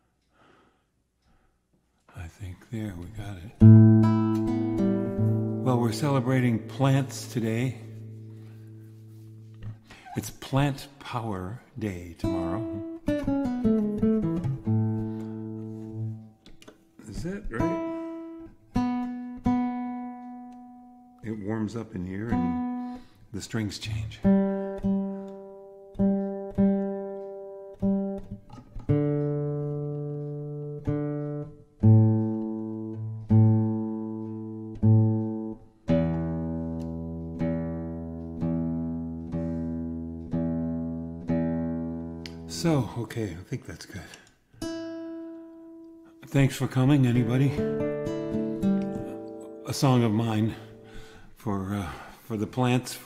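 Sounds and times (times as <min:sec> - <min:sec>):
classical guitar notes and chord: 0:03.5 - 0:10.2, 0:12.2 - 0:21.2, 0:22.0 - 0:23.2, 0:24.2 - 0:42.9, 0:44.6 - 0:51.3.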